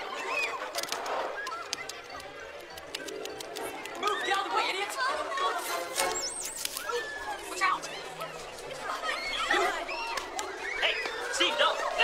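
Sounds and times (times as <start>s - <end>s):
indistinct chattering voices: 0.0s - 12.0s.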